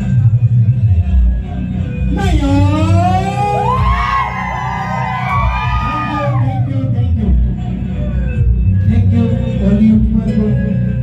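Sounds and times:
man singing through pa: 0.0 - 4.3, 5.4 - 11.0
keyboard backing: 0.0 - 11.0
low bass: 0.0 - 11.0.

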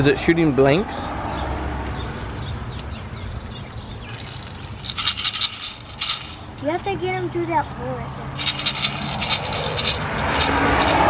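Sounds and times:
small object rattling and scraping: 1.4 - 2.9, 4.0 - 6.8, 8.3 - 11.0.

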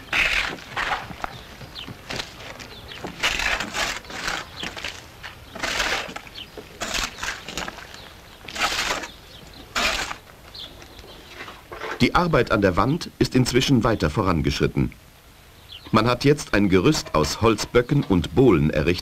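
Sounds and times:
scraping and rustling of clay: 0.0 - 12.0.

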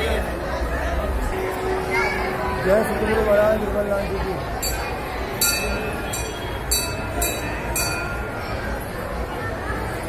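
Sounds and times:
murmur of a crowd: 0.0 - 10.0
brass bell ringing: 4.6 - 8.6.

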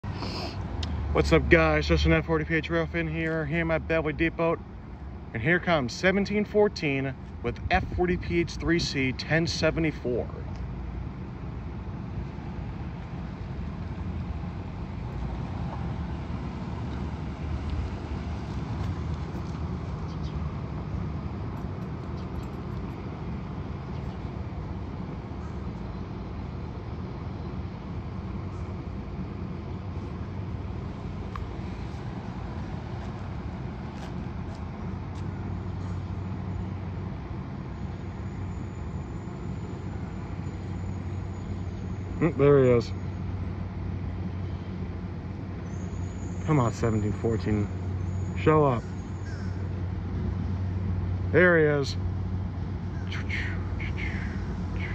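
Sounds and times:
road traffic rumble: 0.0 - 54.9.

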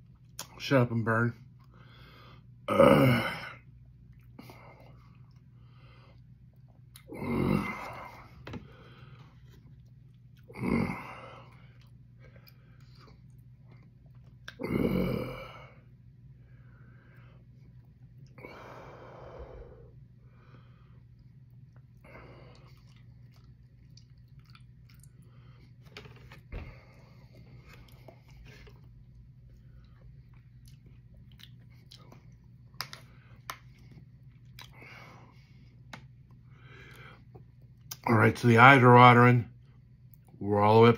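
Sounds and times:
steady low hum: 0.0 - 40.9
lip smacks and clicks: 0.2 - 0.6, 30.3 - 34.8.

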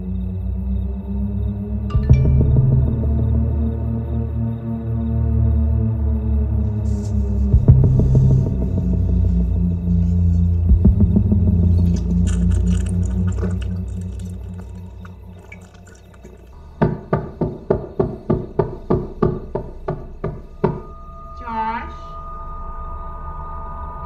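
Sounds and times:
low drone: 0.0 - 16.8, 19.1 - 24.0
rapid knocks on wooden door: 16.8 - 20.4.

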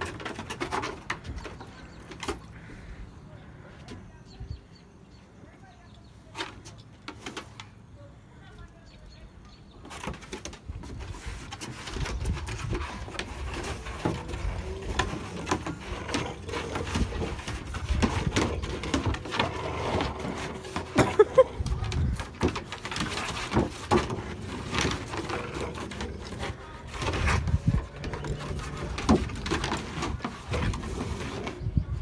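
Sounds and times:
puppy tugging rope toy on deck: 0.0 - 2.7, 9.8 - 32.0.

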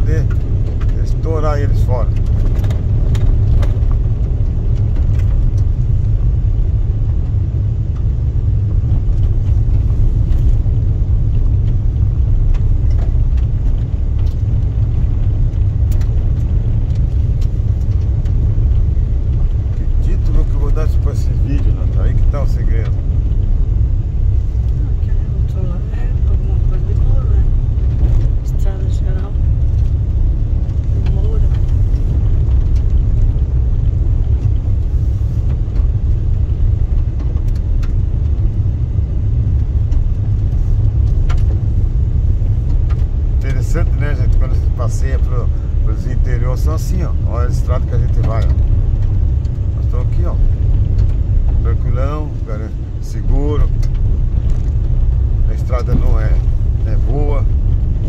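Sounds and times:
car driving on dirt road: 0.0 - 58.0.

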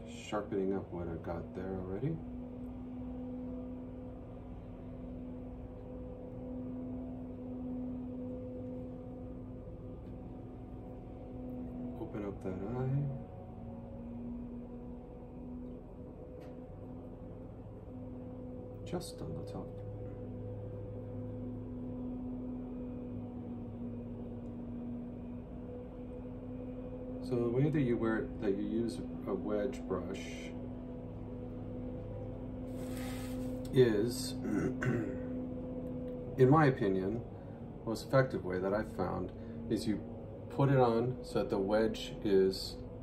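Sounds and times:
faint low rumble: 0.0 - 43.0
steady low hum: 0.0 - 43.0.

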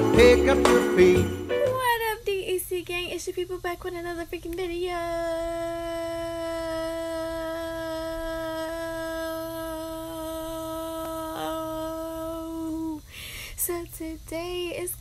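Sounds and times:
person holding a long sung note: 5.2 - 13.0.

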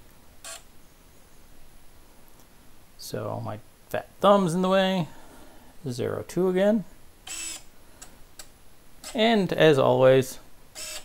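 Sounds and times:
derailleur motor whirring: 7.3 - 7.7, 10.8 - 11.0.

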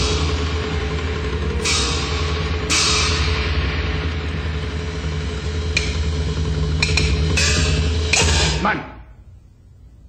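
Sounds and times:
low drum rumble: 0.0 - 8.6
sharp percussion strokes: 0.0 - 8.8.

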